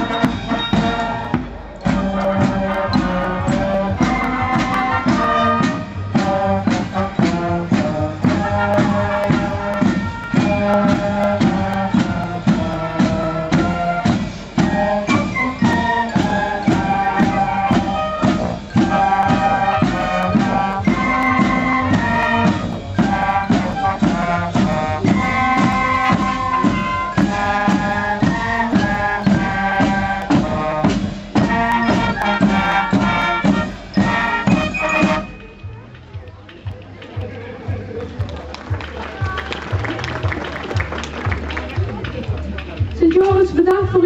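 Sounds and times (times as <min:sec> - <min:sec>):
marching band playing: 0:00.0 - 0:44.0
snare and bass drums beating: 0:00.0 - 0:44.0.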